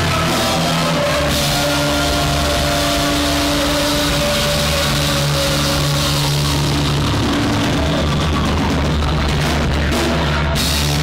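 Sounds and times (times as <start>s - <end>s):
rock band playing loudly: 0.0s - 11.0s.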